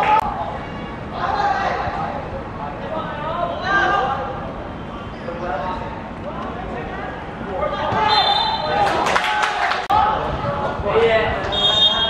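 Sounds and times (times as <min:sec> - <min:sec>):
referee whistle blast: 0:08.0 - 0:08.8, 0:11.5 - 0:12.0.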